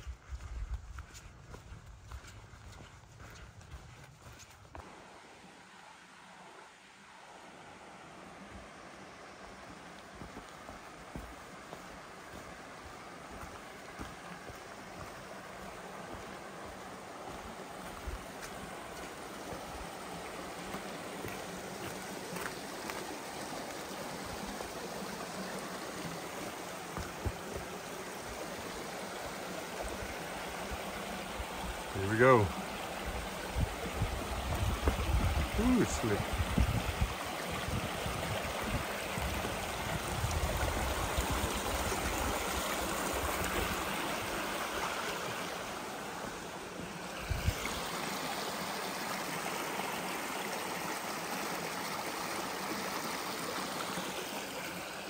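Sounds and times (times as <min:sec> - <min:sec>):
mountain creek rushing: 0:00.0 - 0:55.0
short voice sound: 0:35.6 - 0:36.2.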